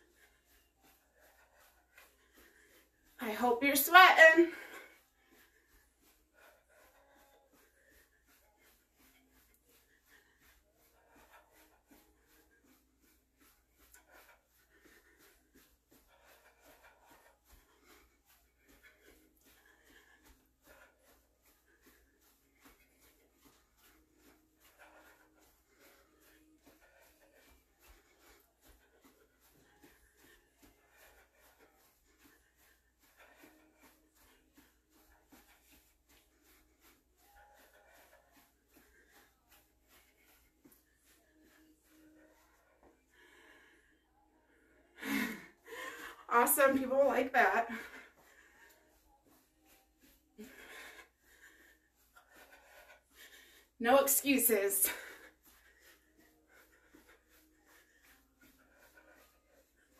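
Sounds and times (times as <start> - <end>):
person breathing hard: 0.0 - 3.2, 4.4 - 46.3, 47.7 - 59.9.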